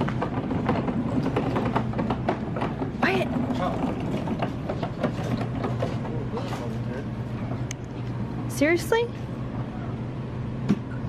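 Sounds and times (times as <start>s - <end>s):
low store hum: 0.0s - 11.0s
shopping cart wheels rattling: 3.0s - 6.7s.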